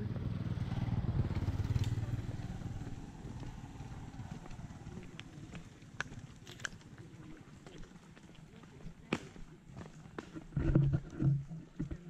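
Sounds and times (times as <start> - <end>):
small motorcycle engine running: 0.0 - 6.7.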